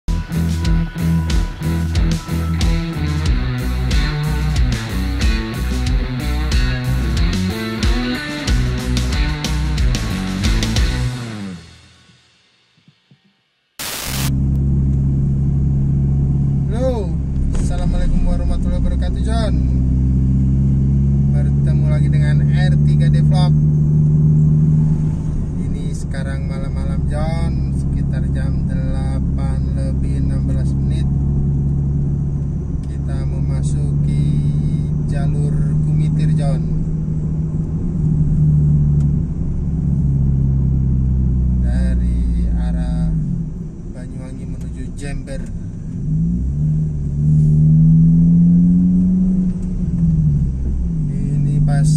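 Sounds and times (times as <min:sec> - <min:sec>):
car engine and tyres droning: 0:00.1 - 0:12.1, 0:14.3 - 0:51.9
short burst of noise: 0:13.8 - 0:14.4.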